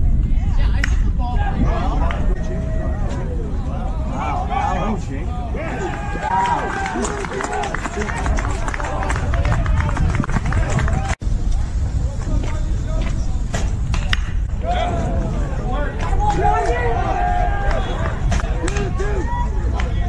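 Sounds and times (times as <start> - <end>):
wind rumble on microphone: 0.0 - 20.0
voices calling out: 1.3 - 11.1, 14.5 - 20.0.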